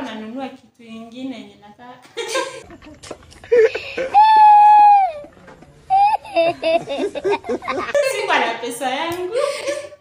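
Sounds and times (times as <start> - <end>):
child crying: 4.0 - 5.3, 5.9 - 6.5.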